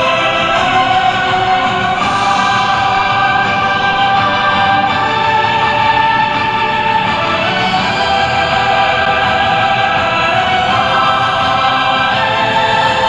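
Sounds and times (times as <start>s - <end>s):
slow held chords over loudspeakers: 0.0s - 13.0s.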